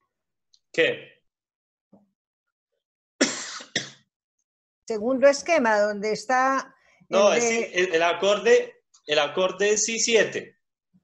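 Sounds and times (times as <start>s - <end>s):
person coughing: 3.2s - 4.1s.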